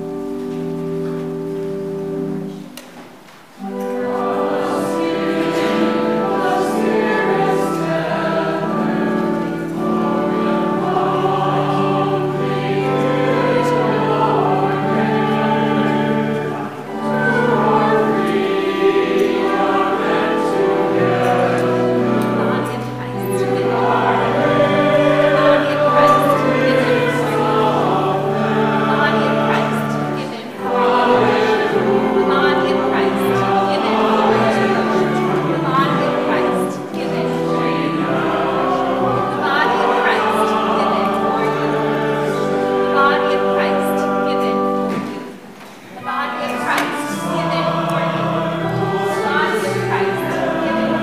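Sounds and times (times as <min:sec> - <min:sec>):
instrumental accompaniment: 0:00.0 - 0:51.0
group singing a slow hymn: 0:03.6 - 0:51.0.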